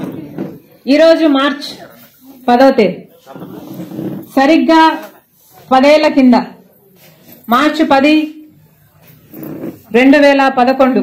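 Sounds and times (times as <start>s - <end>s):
woman speaking over public address: 0.8s - 3.1s, 5.7s - 6.6s, 7.5s - 8.5s, 9.9s - 11.0s.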